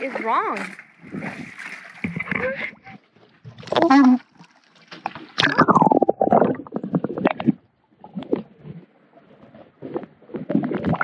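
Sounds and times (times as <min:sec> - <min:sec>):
water gurgling and sloshing: 0:00.0 - 0:11.0
rapid bubbling: 0:03.4 - 0:11.0.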